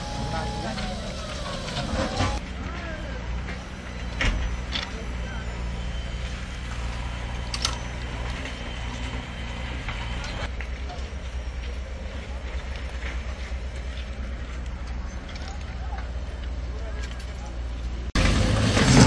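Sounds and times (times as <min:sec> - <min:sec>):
people talking: 0:00.0 - 0:05.9, 0:10.5 - 0:13.5, 0:14.8 - 0:17.7
heavy machinery engine rumble: 0:00.0 - 0:19.0.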